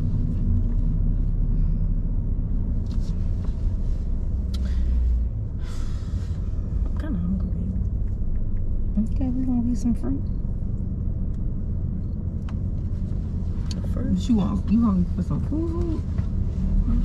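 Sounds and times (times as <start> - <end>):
car driving rumble inside cabin: 0.0 - 17.0.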